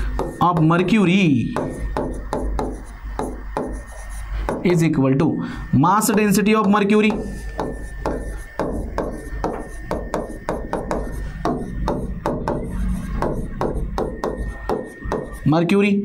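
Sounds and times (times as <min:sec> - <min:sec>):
stylus tapping and scratching on glass: 0:00.0 - 0:04.8, 0:06.1 - 0:15.5.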